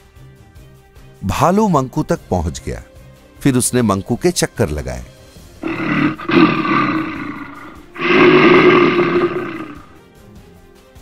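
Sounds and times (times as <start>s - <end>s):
cartoon bear roars: 5.6s - 10.0s.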